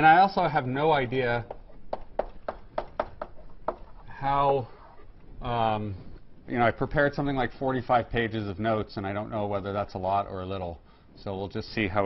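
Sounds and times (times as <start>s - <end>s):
chalk tapping on blackboard: 1.4s - 4.0s.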